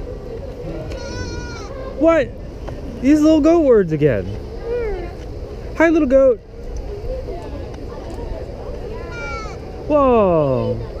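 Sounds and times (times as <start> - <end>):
steady background noise: 0.0 - 11.0
goat bleating: 0.9 - 1.8, 9.1 - 9.6.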